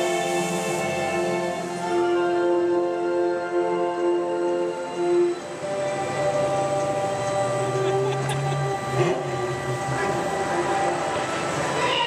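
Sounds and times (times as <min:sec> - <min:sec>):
low drone: 0:00.0 - 0:12.0
ride vehicle mechanical hum: 0:00.0 - 0:12.0.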